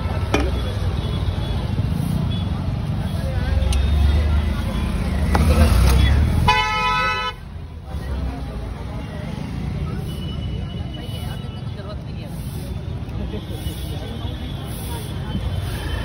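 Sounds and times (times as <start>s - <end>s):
road traffic rumble: 0.0s - 16.0s
vehicle horn honk: 6.5s - 7.4s.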